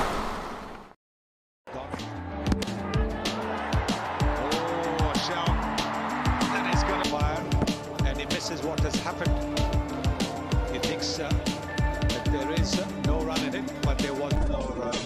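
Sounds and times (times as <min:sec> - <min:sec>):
background music with thumping beat: 0:02.0 - 0:15.0.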